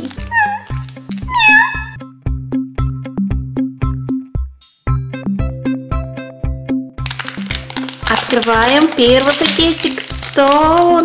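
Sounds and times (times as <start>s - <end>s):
cat meowing: 0.1s - 2.0s.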